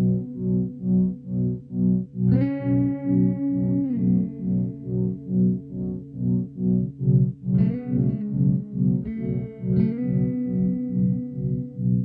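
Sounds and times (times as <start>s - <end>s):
electric guitar music: 0.0s - 12.0s.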